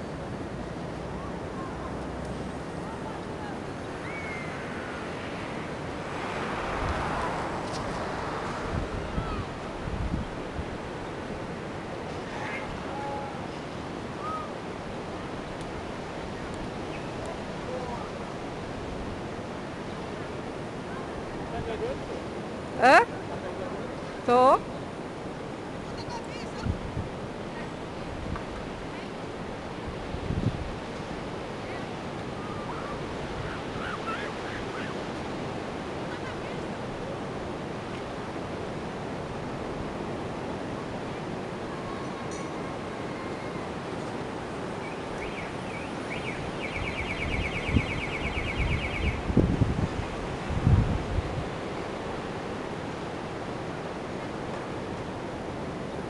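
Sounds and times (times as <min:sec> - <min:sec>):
wind noise on microphone: 0:00.0 - 0:23.0, 0:24.2 - 0:56.0
faint wavering whistles: 0:03.8 - 0:05.6, 0:41.8 - 0:43.8, 0:44.8 - 0:49.3.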